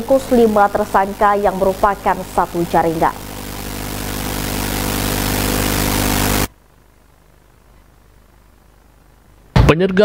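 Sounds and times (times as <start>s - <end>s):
low even hum: 0.0s - 9.5s
steady hiss: 0.0s - 9.6s.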